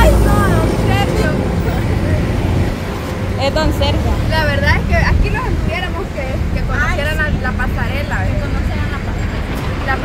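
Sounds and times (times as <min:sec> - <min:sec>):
people talking: 0:00.0 - 0:02.5, 0:03.4 - 0:10.0
wind buffeting microphone: 0:00.0 - 0:10.0.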